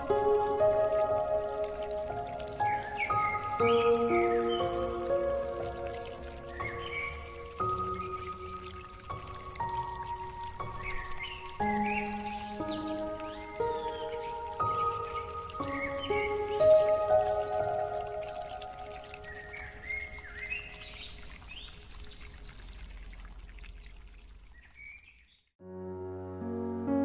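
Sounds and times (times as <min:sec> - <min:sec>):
soft piano melody: 0:00.0 - 0:21.4, 0:25.6 - 0:27.0
birdsong chirps: 0:00.0 - 0:23.1, 0:24.4 - 0:25.6.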